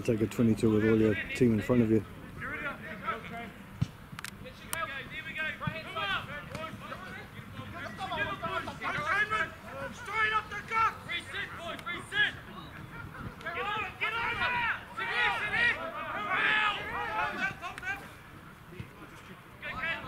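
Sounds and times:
players shouting calls: 0:00.0 - 0:20.0.

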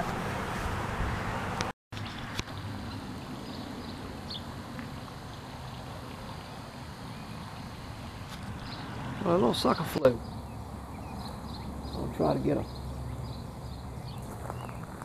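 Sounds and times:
outdoor background noise: 0:00.0 - 0:15.0
small birds chirping: 0:02.0 - 0:15.0.

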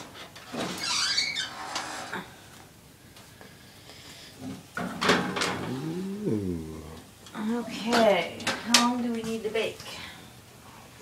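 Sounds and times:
person humming wordlessly: 0:05.6 - 0:07.1.

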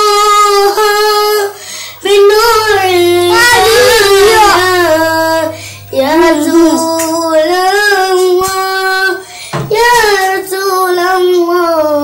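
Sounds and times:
boy singing unaccompanied: 0:00.0 - 0:12.0.

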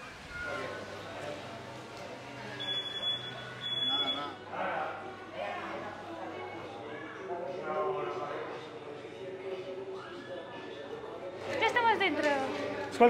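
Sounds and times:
faint background voices: 0:00.0 - 0:13.0.

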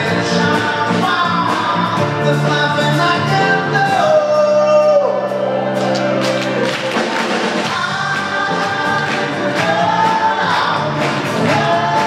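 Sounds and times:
man singing: 0:00.0 - 0:05.4, 0:07.6 - 0:12.0.

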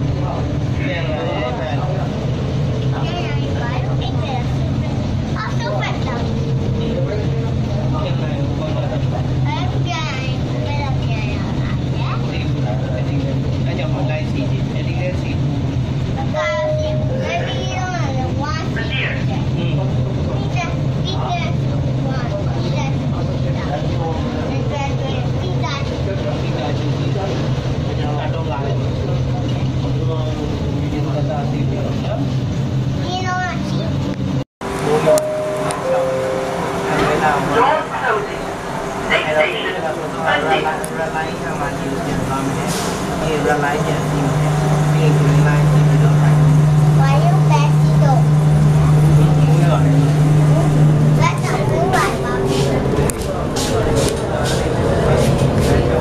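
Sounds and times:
light-rail train hum and rumble: 0:00.0 - 0:56.0
passengers talking: 0:00.0 - 0:56.0.

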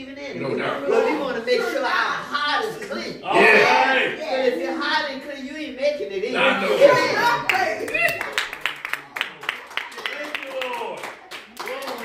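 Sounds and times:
hand claps: 0:07.5 - 0:12.0.

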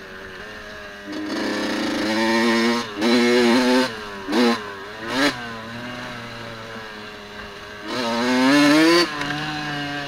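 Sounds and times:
dirt bike engine revving: 0:00.2 - 0:10.0.

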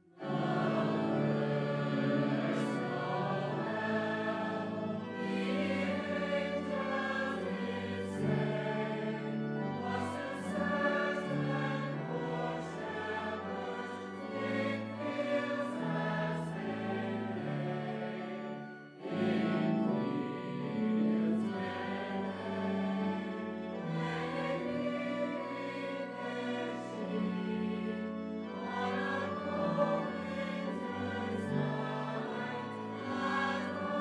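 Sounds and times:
choir and congregation singing: 0:00.0 - 0:34.0
pipe organ: 0:00.0 - 0:34.0.

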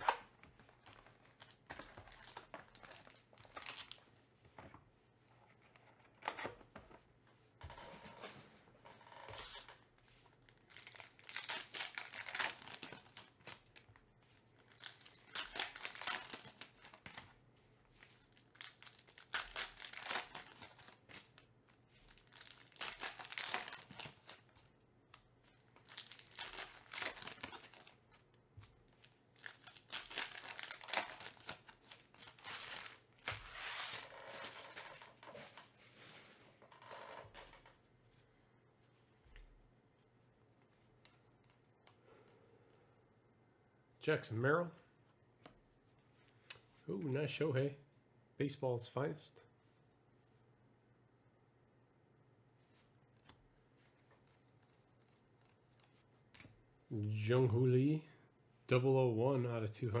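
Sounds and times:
foil wrappers tearing and crinkling: 0:00.8 - 0:04.0, 0:10.5 - 0:13.7, 0:14.6 - 0:17.1, 0:18.2 - 0:21.1, 0:22.0 - 0:24.5, 0:25.8 - 0:28.0, 0:29.4 - 0:35.0.

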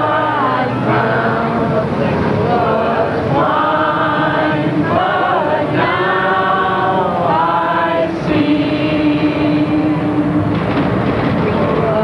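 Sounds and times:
group of people singing: 0:00.0 - 0:10.6.

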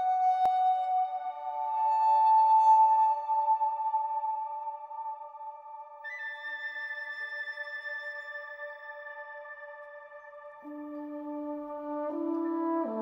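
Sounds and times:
orchestral film music: 0:10.6 - 0:13.0.

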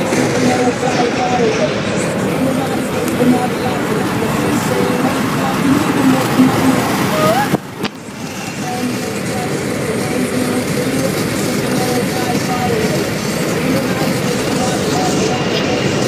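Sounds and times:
indistinct voices: 0:00.0 - 0:16.0
road noise inside moving car: 0:00.0 - 0:16.0.

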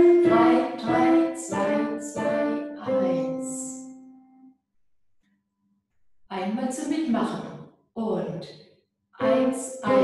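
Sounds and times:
piano note: 0:00.0 - 0:04.5.

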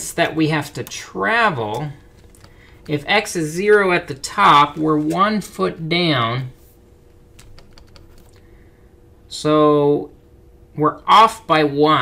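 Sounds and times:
faint steady hum: 0:00.0 - 0:12.0
stylus tapping on pen tablet: 0:07.3 - 0:08.3.

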